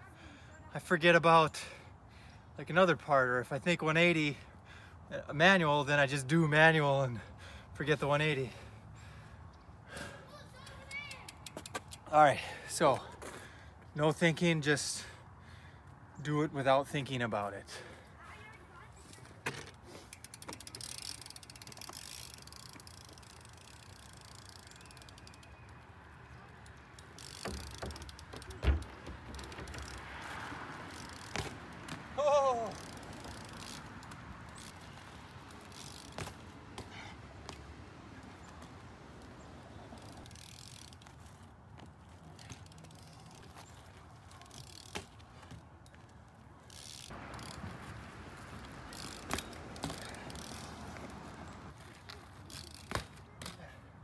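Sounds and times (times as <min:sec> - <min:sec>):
bike tyres rolling on asphalt: 0:03.0 - 0:54.0
bike thumping on pavement: 0:18.8 - 0:25.4, 0:26.6 - 0:39.4, 0:40.0 - 0:46.1, 0:46.7 - 0:53.8.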